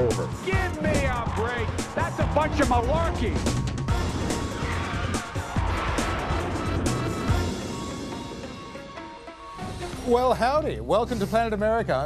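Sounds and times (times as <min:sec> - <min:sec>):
theme music with drum beat: 0:00.0 - 0:12.0.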